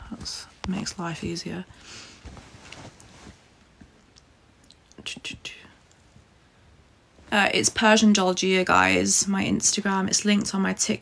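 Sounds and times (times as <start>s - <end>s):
woman whispering: 5.0s - 5.8s.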